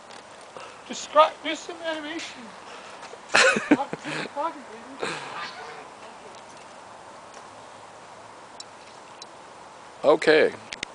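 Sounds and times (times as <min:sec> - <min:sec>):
steady low hiss: 0:00.0 - 0:10.9.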